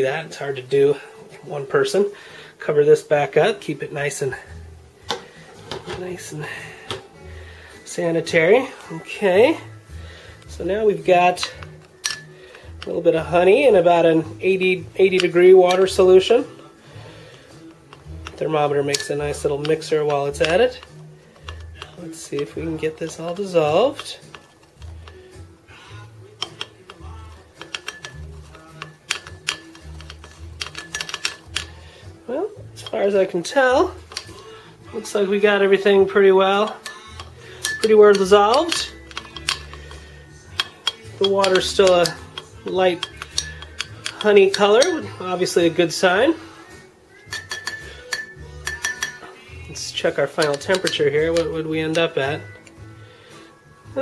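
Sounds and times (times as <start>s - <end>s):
thermometer clinking in glass jar: 26.3s - 31.8s, 36.5s - 45.3s, 47.2s - 52.6s.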